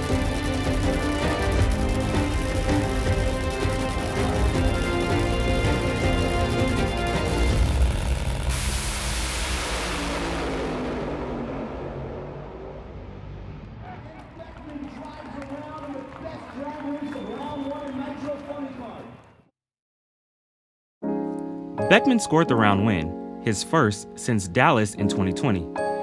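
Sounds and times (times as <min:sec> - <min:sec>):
music: 0:00.0 - 0:08.8, 0:21.0 - 0:26.0
drag racing car engine rushing: 0:00.0 - 0:14.6.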